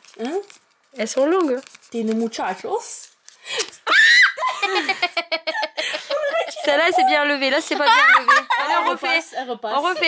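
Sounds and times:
girl shrieking: 3.8 - 4.6
girl giggling: 3.8 - 10.0.

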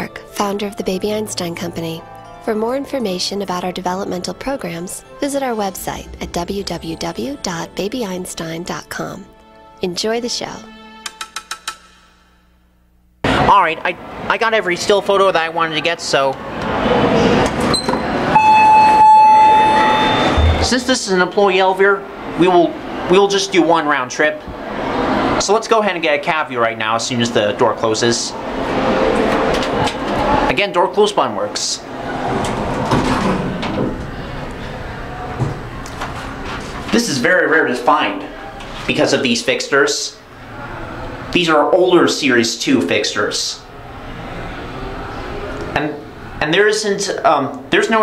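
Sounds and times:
musical jingle percussive notes: 4.8 - 9.6
elevator doors closing: 16.6 - 21.2, 28.3 - 30.5, 31.8 - 37.0
steady elevator cab noise: 16.8 - 23.2.

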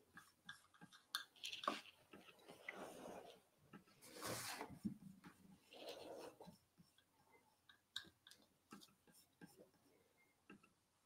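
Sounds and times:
palette knife scraping paint: 0.0 - 10.2.

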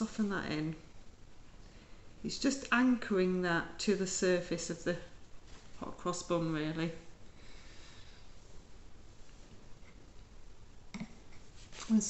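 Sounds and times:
woman speaking: 0.0 - 0.9, 2.2 - 5.2, 5.8 - 7.1.

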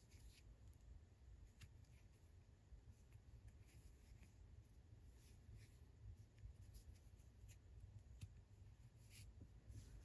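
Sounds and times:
crochet hook and yarn rustling: 0.0 - 10.0
low steady hum: 0.0 - 10.0.

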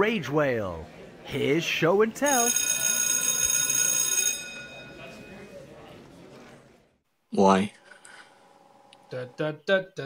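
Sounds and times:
school bell ringing: 2.2 - 5.7.

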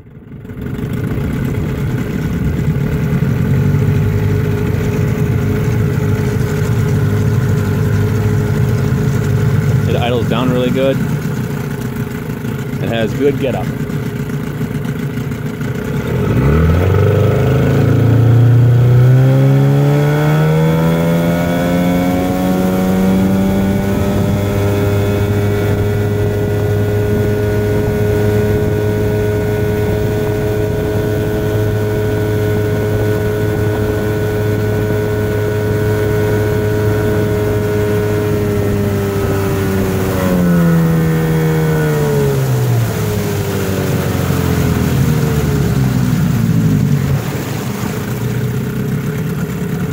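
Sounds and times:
outboard motor running: 0.0 - 49.9
water rushing along hull: 0.0 - 49.9.

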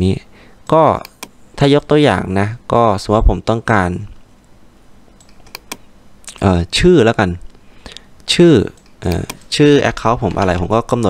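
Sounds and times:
man speaking: 0.0 - 4.2, 6.3 - 7.4, 8.3 - 11.0
computer mouse clicks: 5.2 - 6.4, 8.7 - 9.5.

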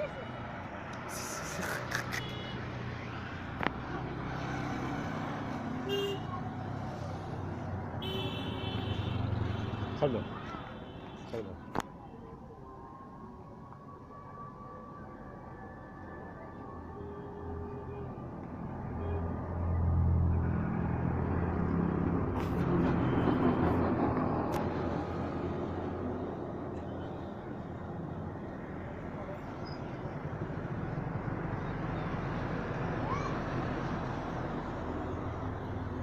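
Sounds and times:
street noise: 0.0 - 36.0.

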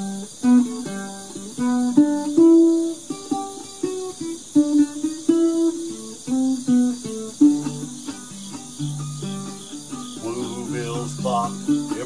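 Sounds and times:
crickets chirring: 0.0 - 12.0
ukulele plucked notes and chords: 0.0 - 12.0.

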